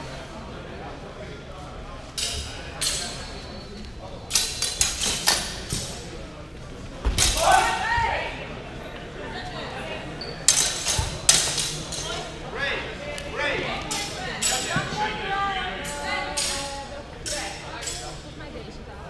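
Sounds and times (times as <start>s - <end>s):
swords clashing: 4.3s - 5.9s, 7.2s - 7.8s, 10.5s - 12.2s, 15.8s - 18.2s.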